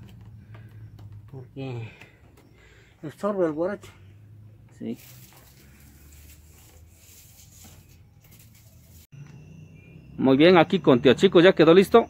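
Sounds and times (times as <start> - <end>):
cane strips rustling and ticking: 4.6 - 9.1.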